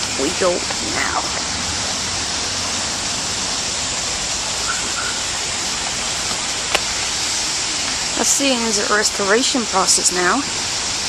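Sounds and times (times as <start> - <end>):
steady rushing hiss: 0.0 - 11.0.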